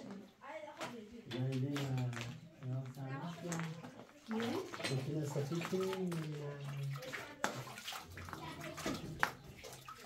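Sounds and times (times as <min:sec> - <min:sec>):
water splashing: 0:01.4 - 0:10.0.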